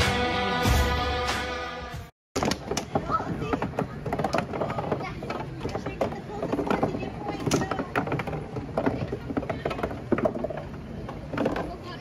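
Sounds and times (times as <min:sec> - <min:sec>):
sharp clacks and knocks: 0:02.4 - 0:12.0
crowd chatter: 0:02.6 - 0:12.0.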